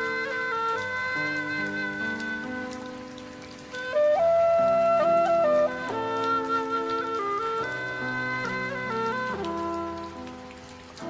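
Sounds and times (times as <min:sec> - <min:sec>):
bamboo flute melody: 0:00.0 - 0:11.0
soft rain-like patter: 0:00.0 - 0:11.0.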